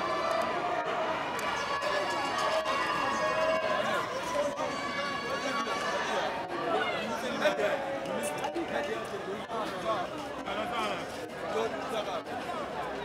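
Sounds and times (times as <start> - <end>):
crowd hubbub: 0.0 - 13.0.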